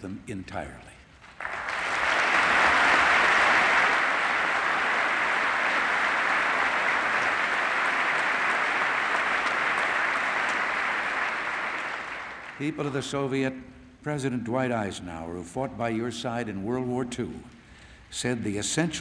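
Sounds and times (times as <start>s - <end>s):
large audience applauding: 1.2s - 13.2s.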